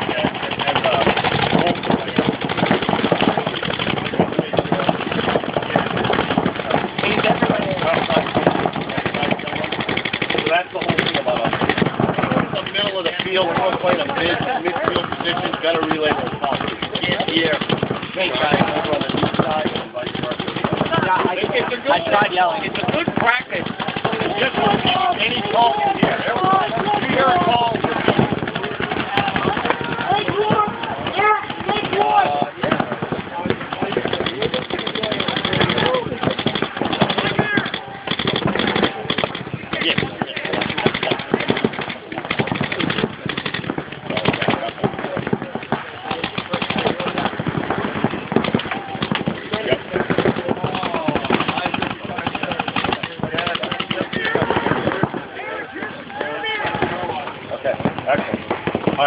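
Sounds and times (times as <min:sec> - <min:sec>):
paintball markers firing rapidly: 0:00.0 - 0:59.0
people shouting: 0:20.6 - 0:43.0, 0:44.2 - 0:59.0.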